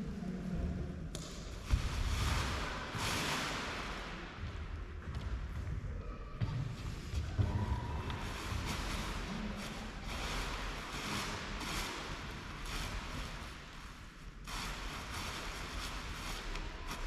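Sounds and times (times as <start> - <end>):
fabric rustling: 8.3 - 17.0.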